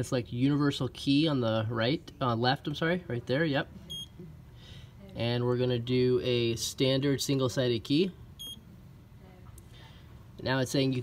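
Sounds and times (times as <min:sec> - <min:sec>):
short electronic beep: 0:08.4 - 0:08.6.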